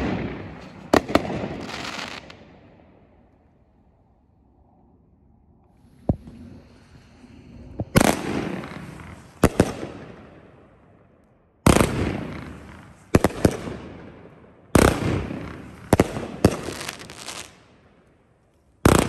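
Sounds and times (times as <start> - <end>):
firework bangs: 0.0 - 2.4, 7.8 - 10.4
firework hiss: 0.6 - 2.3, 16.6 - 17.5.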